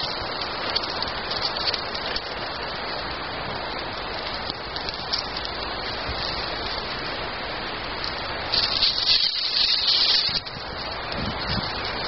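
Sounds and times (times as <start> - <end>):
fire crackling: 0.0 - 12.0.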